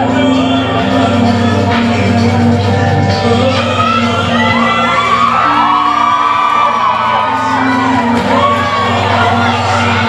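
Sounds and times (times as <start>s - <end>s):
loud dance music: 0.0s - 10.0s
audience whooping and cheering: 3.7s - 10.0s.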